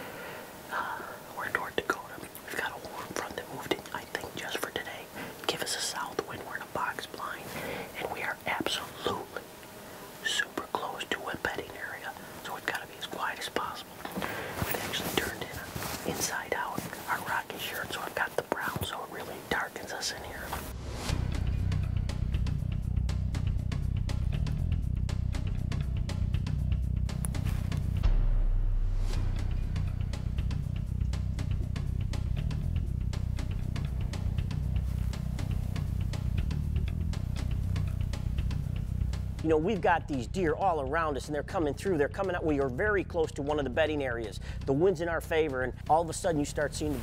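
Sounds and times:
man whispering: 0.7s - 9.5s, 10.1s - 20.7s, 43.8s - 47.0s
music with steady beat: 20.6s - 40.7s.

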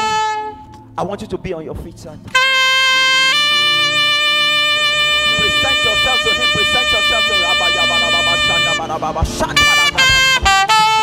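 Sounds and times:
saxophone long held notes: 0.0s - 0.7s, 2.3s - 11.0s.

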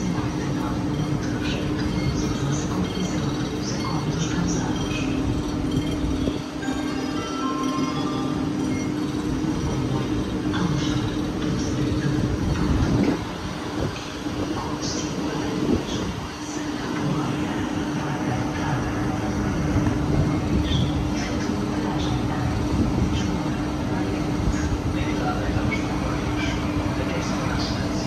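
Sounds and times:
train electrical hum: 0.0s - 28.0s.

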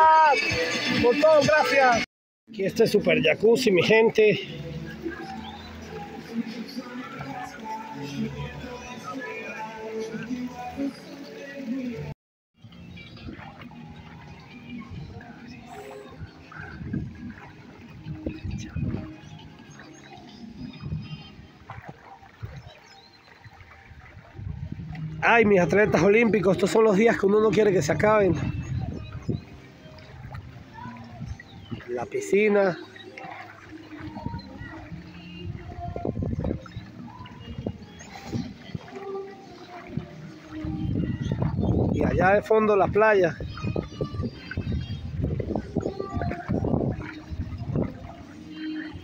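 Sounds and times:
faint background music: 0.0s - 49.0s
wind buffeting microphone: 12.7s - 19.6s, 20.4s - 22.8s, 23.5s - 26.4s, 27.9s - 32.0s, 33.5s - 39.2s, 39.8s - 49.0s.

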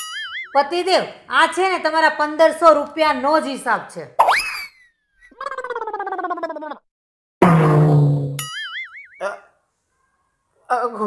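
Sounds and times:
falling warbling tone: 7.4s - 9.2s
wobbling boing: 7.4s - 9.2s.

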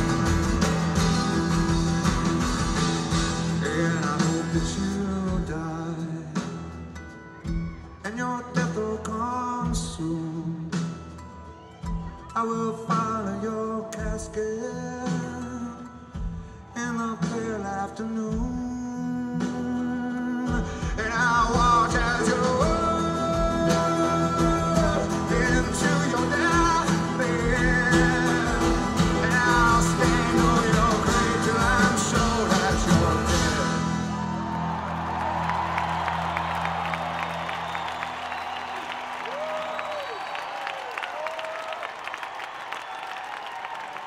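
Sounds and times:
audience applauding and cheering: 0.0s - 4.9s, 21.0s - 44.0s
acoustic band playing: 0.0s - 40.6s
man singing: 3.4s - 6.8s, 8.0s - 11.0s, 12.2s - 34.3s.

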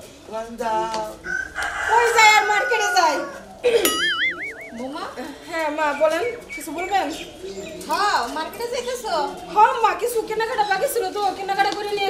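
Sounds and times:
rooster crowing: 1.2s - 3.6s.

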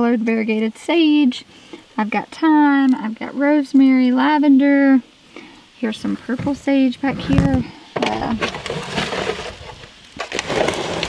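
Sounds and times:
plastic pots and leaves rustling: 0.0s - 11.0s.

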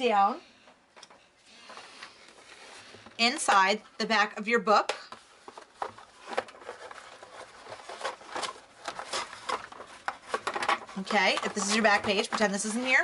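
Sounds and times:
paper and plastic rustling: 1.1s - 3.2s, 5.2s - 13.0s.

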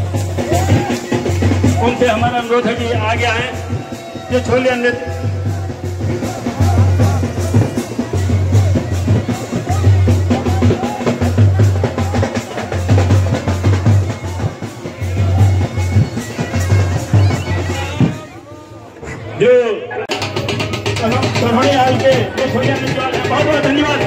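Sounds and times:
heavy drum beat: 0.0s - 18.3s, 20.1s - 24.0s
wavering wind instrument melody: 0.0s - 18.8s.

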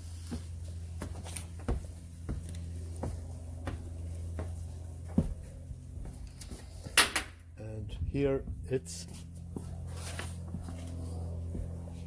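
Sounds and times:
low hum: 0.0s - 12.0s.

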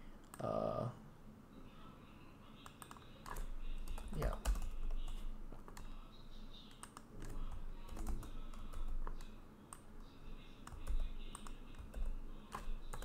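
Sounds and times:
typing on computer keyboard: 2.6s - 6.0s, 6.6s - 9.8s, 10.6s - 13.0s.

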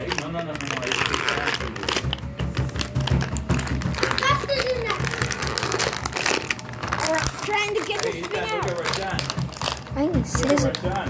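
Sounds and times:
background music: 0.0s - 11.0s
plastic packaging crinkling: 0.0s - 11.0s.

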